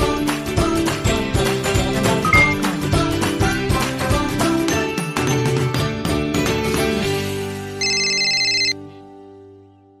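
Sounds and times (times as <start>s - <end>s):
electronic phone ringing trill: 2.3s - 2.6s, 7.8s - 8.8s.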